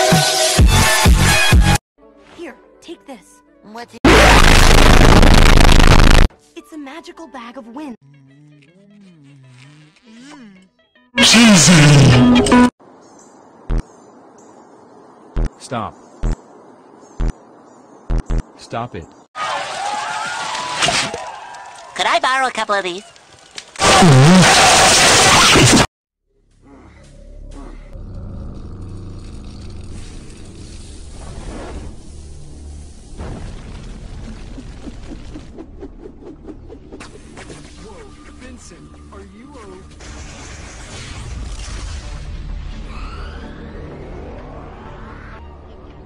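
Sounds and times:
cartoon explosions: 4.1 - 6.3, 23.8 - 25.9, 33.2 - 35.6, 40.0 - 44.8
cartoon voice: 10.0 - 12.0
loud distorted voice-like burst: 11.2 - 12.4
faint outdoor hiss: 12.8 - 19.2
deep steady cartoon rumble: 26.6 - 31.2.

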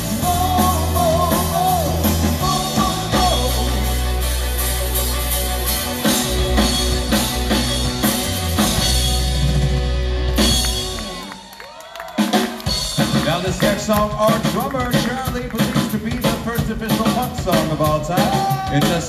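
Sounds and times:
person singing: 0.0 - 4.4, 13.1 - 19.0
bass guitar: 0.0 - 11.4, 12.6 - 19.0
electric guitars: 0.0 - 11.6
drum kit: 0.0 - 19.0.

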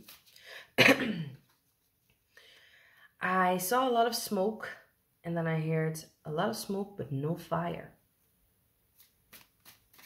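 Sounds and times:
cards being shuffled: 0.0 - 0.4, 1.4 - 2.3, 8.9 - 10.0.

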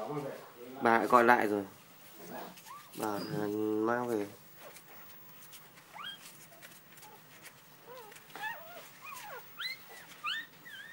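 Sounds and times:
puppy whimpering: 2.6 - 3.6, 5.9 - 7.2, 7.8 - 10.9.

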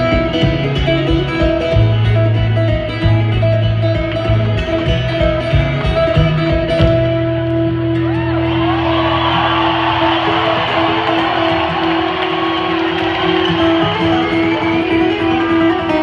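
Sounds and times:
twelve-string acoustic guitar: 0.0 - 16.0.

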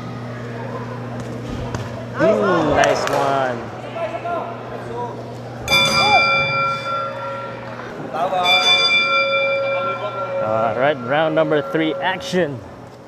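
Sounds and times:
boxing ring bell ringing: 5.7 - 12.7.

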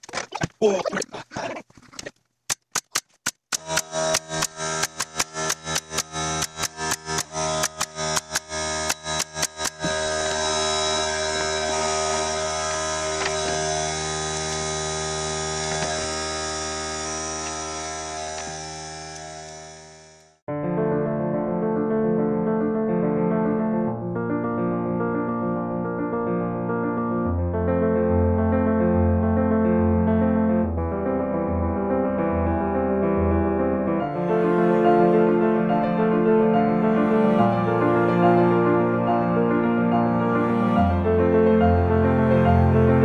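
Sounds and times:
pneumatic nail gun firing: 2.7 - 10.0.

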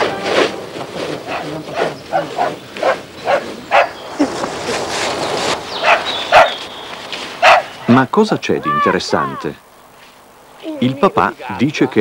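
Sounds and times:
small dog barking: 1.3 - 4.0, 5.8 - 6.6, 7.4 - 7.7
feet rustling through dry leaves: 2.0 - 7.9.

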